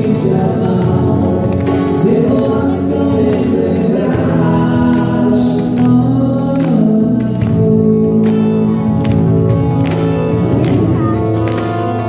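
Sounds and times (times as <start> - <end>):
acoustic guitar: 0.0 - 12.0
cajon beat: 0.0 - 12.0
electric bass guitar: 0.0 - 12.0.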